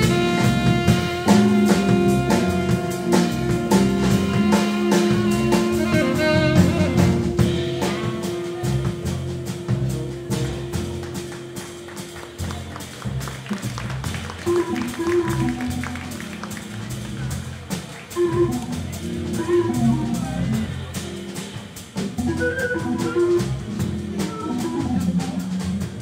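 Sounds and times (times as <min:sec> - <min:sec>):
double bass: 0:00.0 - 0:26.0
drums with cymbal ticks: 0:00.0 - 0:26.0
piano phrases: 0:00.0 - 0:26.0.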